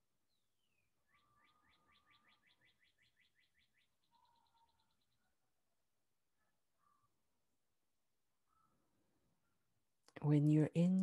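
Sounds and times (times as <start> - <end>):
bird chirping and trilling: 0.3 - 5.3.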